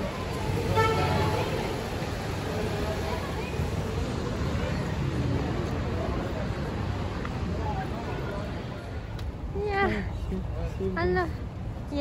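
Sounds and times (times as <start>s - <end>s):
street traffic rumble: 0.0s - 12.0s
vehicle horn toot: 0.7s - 1.4s.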